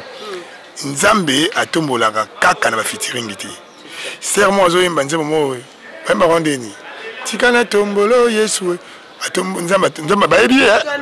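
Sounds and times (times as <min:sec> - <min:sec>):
man speaking into a microphone: 0:00.8 - 0:10.9.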